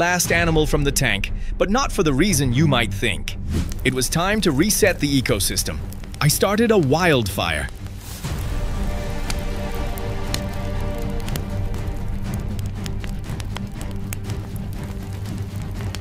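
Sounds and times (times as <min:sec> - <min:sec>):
sustained low background music: 0:00.0 - 0:16.0
small flames crackling: 0:03.4 - 0:16.0.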